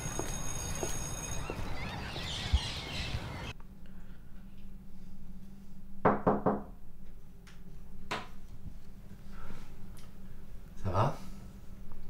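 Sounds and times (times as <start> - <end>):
knocks on a door: 6.0 - 6.7.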